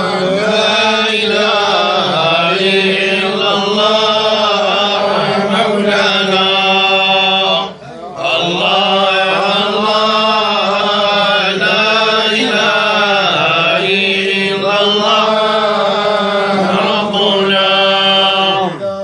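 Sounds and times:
men chanting in unison: 0.0s - 19.0s.

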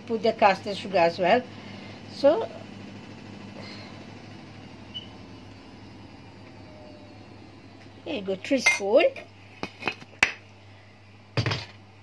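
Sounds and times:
kitchenware clinking: 8.6s - 9.0s.

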